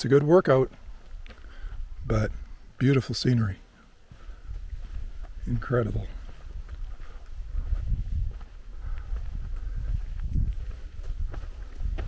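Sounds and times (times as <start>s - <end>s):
footsteps on dirt trail: 0.0s - 12.0s
heavy breathing: 1.4s - 2.6s, 3.7s - 4.7s, 8.5s - 10.2s
steady low rumble: 3.9s - 12.0s.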